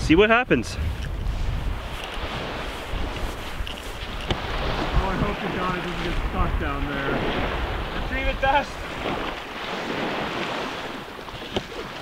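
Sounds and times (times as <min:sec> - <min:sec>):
wind buffeting microphone: 0:00.0 - 0:12.0
small surf: 0:00.2 - 0:12.0.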